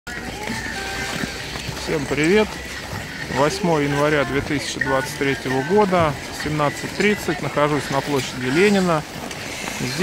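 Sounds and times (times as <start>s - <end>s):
skate blades scraping ice: 0.1s - 10.0s.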